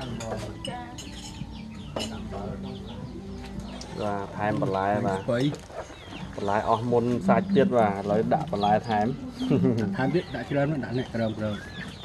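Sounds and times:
chickens clucking: 0:00.0 - 0:12.0
tableware clink: 0:00.2 - 0:02.2.

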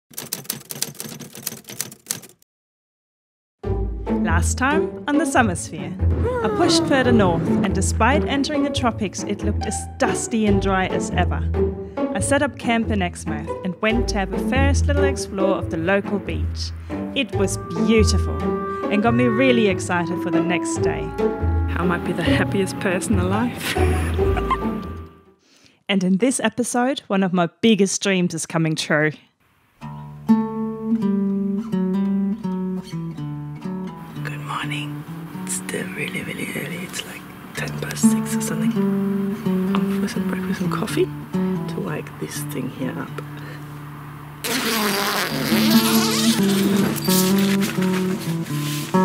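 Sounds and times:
typewriter keystrokes clacking: 0:00.1 - 0:02.4
person speaking: 0:04.2 - 0:10.2, 0:17.2 - 0:20.9, 0:35.5 - 0:38.8
woman laughing: 0:06.2 - 0:07.0, 0:23.6 - 0:24.8.

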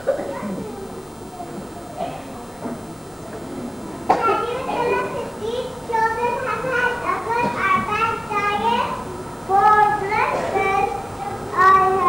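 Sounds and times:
young children speaking: 0:00.0 - 0:12.0.

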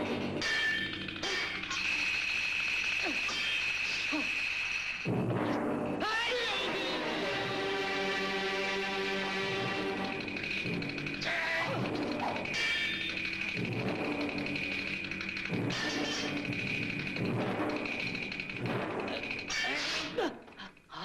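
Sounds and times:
dramatic orchestral music: 0:05.1 - 0:19.6.

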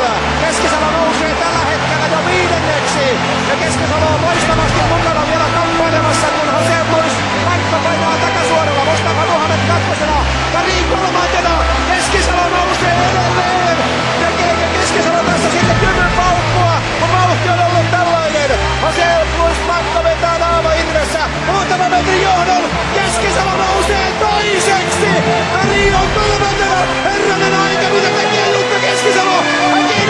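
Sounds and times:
stadium crowd noise: 0:00.0 - 0:30.0.

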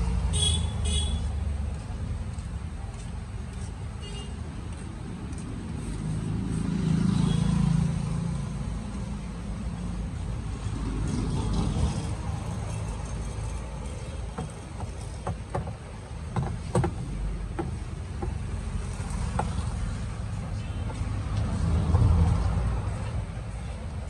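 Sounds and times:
vehicles passing: 0:00.0 - 0:24.0.

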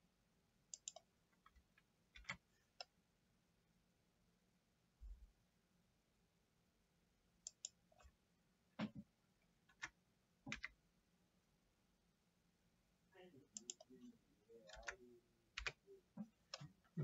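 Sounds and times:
computer mouse and keyboard clicks: 0:00.7 - 0:02.9, 0:07.4 - 0:08.2, 0:09.7 - 0:10.8, 0:14.7 - 0:15.0, 0:15.6 - 0:16.8.

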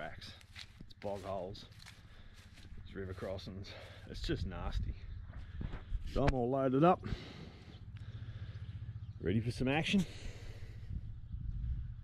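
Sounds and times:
pickup engine idling: 0:07.2 - 0:09.2.

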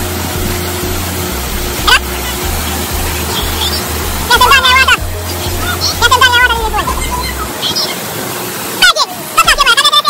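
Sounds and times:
waterfall splashing into pool: 0:00.0 - 0:10.0
person speaking: 0:01.8 - 0:08.0.

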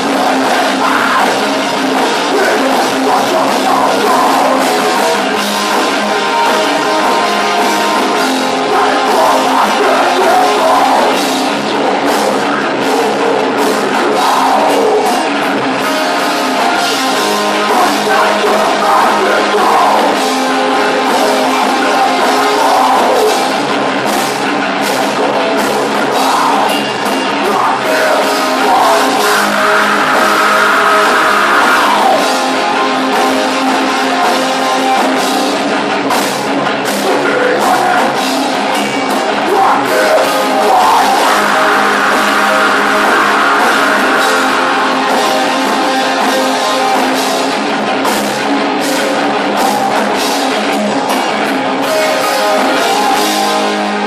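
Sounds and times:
live metal band playing: 0:00.0 - 0:54.0.

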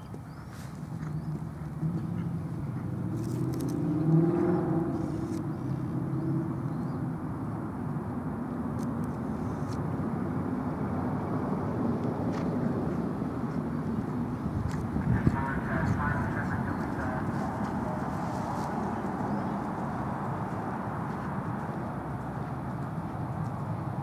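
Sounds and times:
distant voices: 0:11.6 - 0:24.0.

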